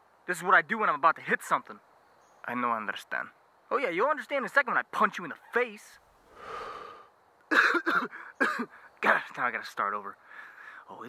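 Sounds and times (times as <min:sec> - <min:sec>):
man coughing: 0:07.5 - 0:08.8.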